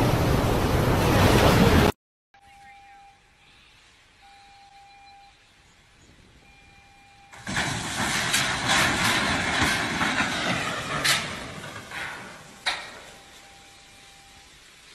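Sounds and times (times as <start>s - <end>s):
faint steady tone: 2.4s - 5.8s, 6.4s - 7.4s, 12.5s - 14.9s
sharp metal crack: 7.4s - 13.2s
steel hulls crunching and grinding: 7.4s - 14.2s.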